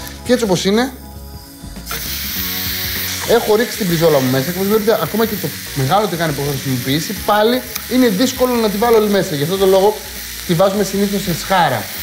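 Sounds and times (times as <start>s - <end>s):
steak sizzling in frying pan: 1.6s - 12.0s.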